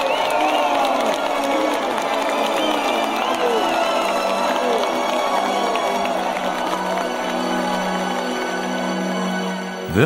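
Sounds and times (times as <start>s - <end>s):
crowd cheering and clapping: 0.0s - 10.0s
music playing: 0.0s - 10.0s.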